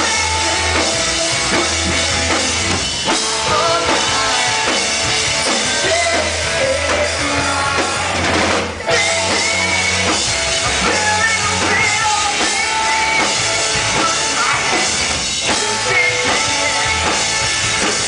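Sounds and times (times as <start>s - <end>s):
drum kit beat: 0.0s - 18.0s
electric guitars: 0.0s - 18.0s.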